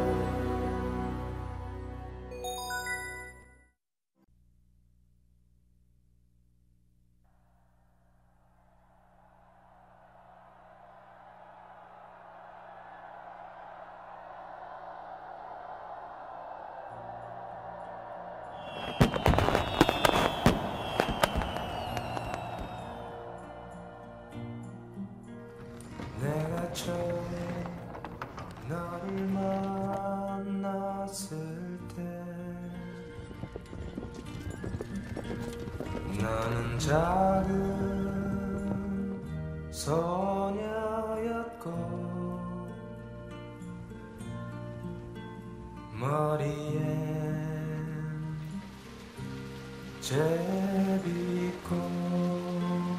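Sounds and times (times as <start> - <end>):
fireworks bangs and crackles: 18.6 - 23.2, 25.6 - 30.4, 33.2 - 39.1
falling firework whistles: 18.6 - 24.0
horses galloping on turf: 32.8 - 39.0
wash of noise: 47.6 - 52.9.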